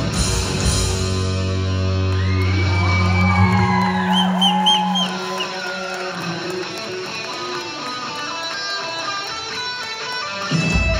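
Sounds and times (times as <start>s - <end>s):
live rock band chord: 0.0s - 2.0s.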